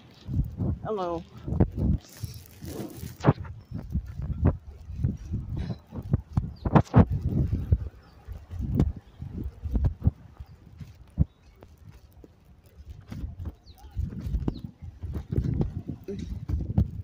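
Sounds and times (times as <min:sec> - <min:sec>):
low microphone rumble: 0:00.0 - 0:17.0
footsteps on brick: 0:00.2 - 0:17.0.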